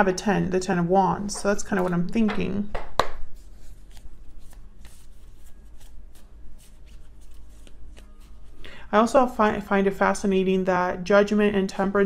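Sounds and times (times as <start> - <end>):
cards being shuffled: 3.4 - 8.6.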